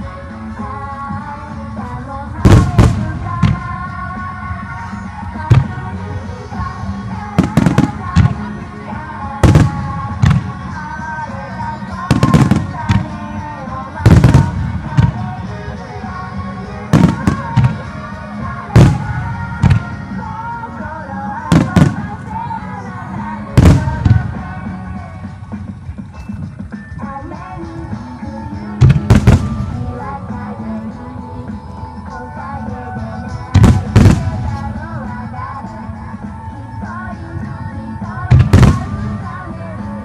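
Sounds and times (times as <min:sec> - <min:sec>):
loud music soundtrack: 0:00.0 - 0:40.0.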